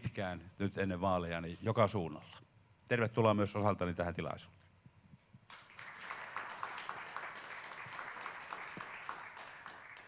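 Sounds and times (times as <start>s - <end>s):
audience applause: 5.5s - 10.0s.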